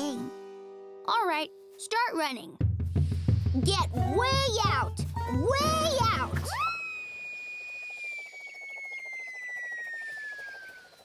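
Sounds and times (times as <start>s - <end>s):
falling cartoon whistle: 5.6s - 11.0s
rapid flutter: 5.7s - 11.0s.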